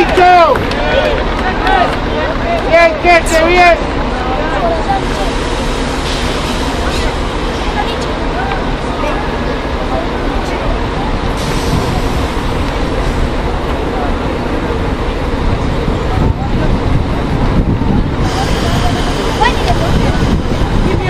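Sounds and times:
distant voices: 0:00.0 - 0:21.0
low outdoor rumble: 0:00.0 - 0:21.0.

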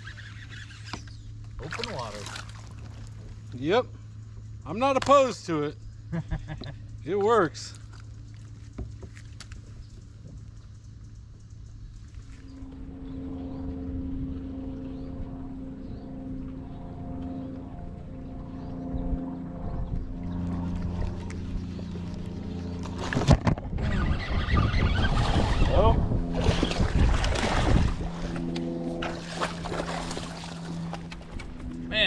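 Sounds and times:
boat motor humming: 0:00.0 - 0:32.0.

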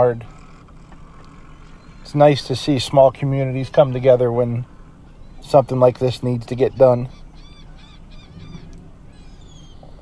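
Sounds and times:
birds chirping: 0:00.0 - 0:10.0
faint outdoor hum: 0:00.0 - 0:10.0
bird whistles gliding in pitch: 0:06.6 - 0:10.0.

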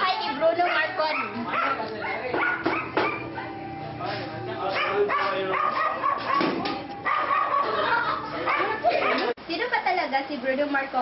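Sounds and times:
voices: 0:00.0 - 0:11.0
dog barking: 0:00.6 - 0:03.6, 0:04.7 - 0:09.3.

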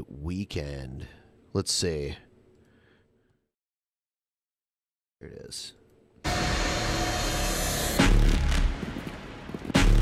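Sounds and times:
dramatic trailer music: 0:06.3 - 0:10.0.

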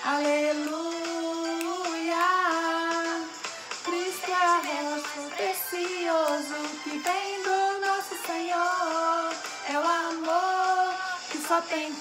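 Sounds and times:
children's song with instruments: 0:00.0 - 0:12.0.

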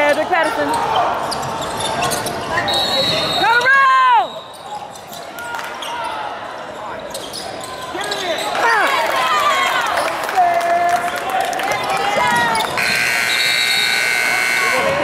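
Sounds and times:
players calling out: 0:00.0 - 0:15.0.

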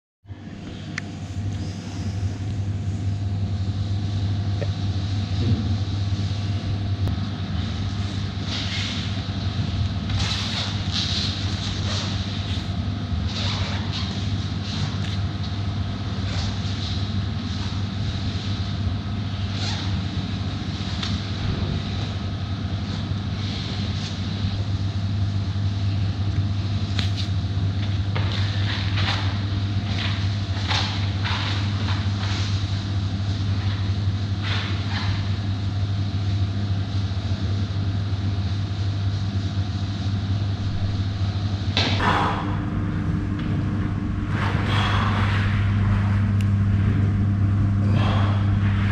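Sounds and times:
ventilation hum: 0:00.2 - 0:48.9.

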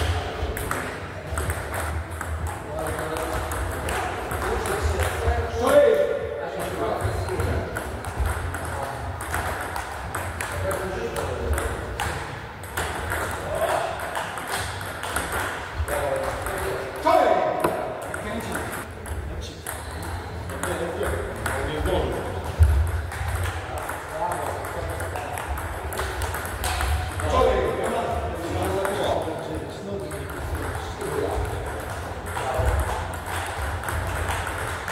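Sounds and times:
ping pong ball clicking: 0:00.6 - 0:05.2, 0:07.3 - 0:15.6, 0:22.8 - 0:28.0, 0:30.2 - 0:34.9.

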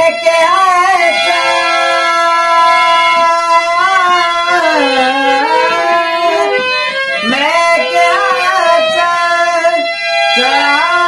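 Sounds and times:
harmonium melody: 0:00.0 - 0:11.0
person singing: 0:00.0 - 0:11.0.

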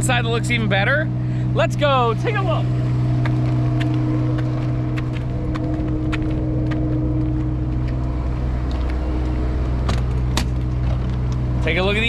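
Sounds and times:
motorhome engine humming: 0:00.0 - 0:12.0
footsteps on asphalt: 0:02.8 - 0:11.7.

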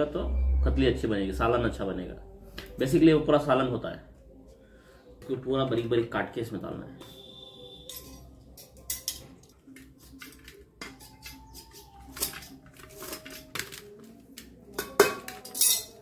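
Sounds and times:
leafy greens being torn: 0:09.7 - 0:14.5.

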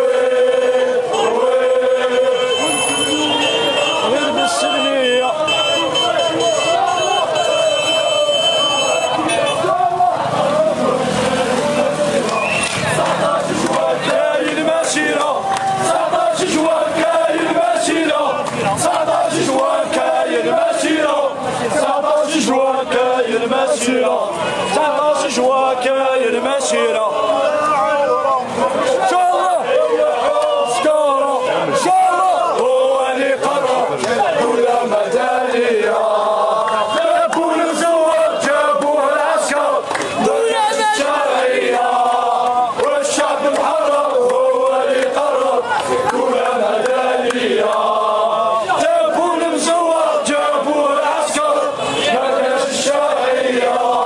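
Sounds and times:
crowd shouting: 0:00.0 - 0:54.0
motorbike engine passing by: 0:09.7 - 0:14.4.

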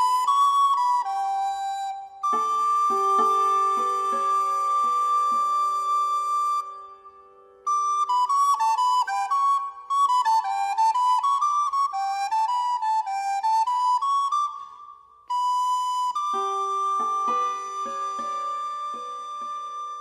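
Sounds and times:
flute melody: 0:00.0 - 0:20.0.

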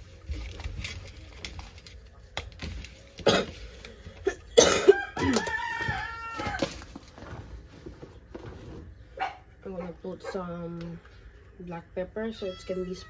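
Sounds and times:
rooster crowing: 0:04.8 - 0:06.8.

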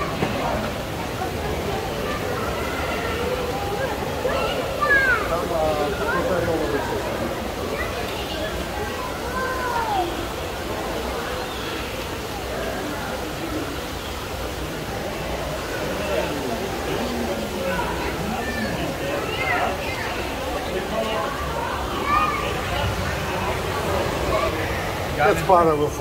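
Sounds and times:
indistinct voices talking: 0:00.0 - 0:26.0.

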